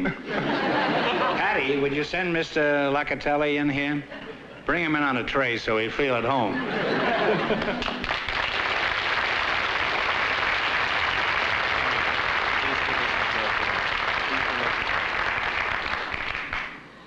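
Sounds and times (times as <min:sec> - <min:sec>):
audience applauding: 0:07.3 - 0:16.8.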